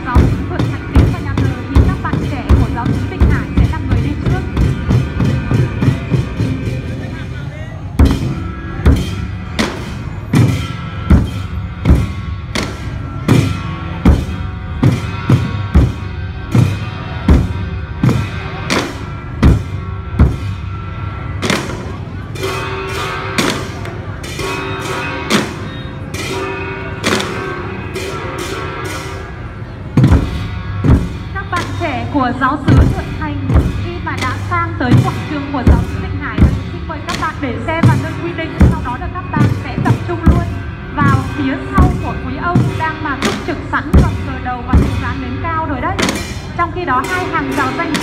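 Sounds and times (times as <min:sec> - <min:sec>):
large drum strokes: 0:00.0 - 0:48.0
smaller drums playing: 0:00.0 - 0:48.0.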